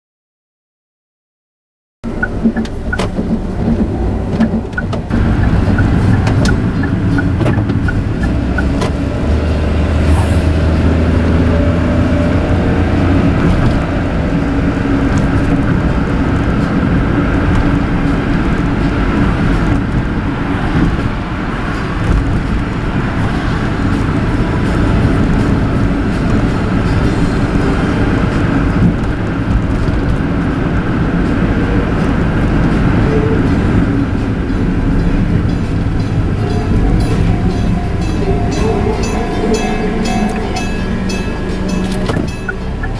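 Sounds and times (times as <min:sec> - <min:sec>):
car engine and road noise: 0:02.0 - 0:42.9.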